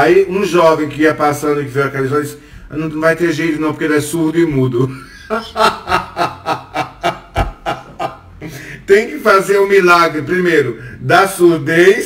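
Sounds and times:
man laughing: 4.8s - 8.8s.

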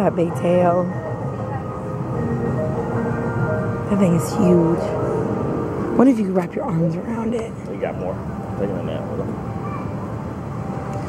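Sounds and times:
faint voices murmuring: 0.0s - 11.0s
steady rushing noise: 0.0s - 11.0s.

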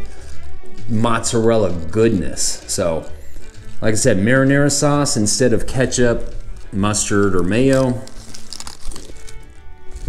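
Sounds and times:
soft musical tones: 0.0s - 8.4s
paper wrapper crinkling: 0.0s - 10.0s.

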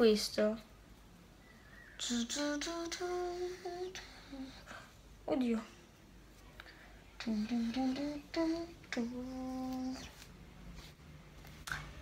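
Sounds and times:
woman humming a tune: 7.2s - 10.2s.

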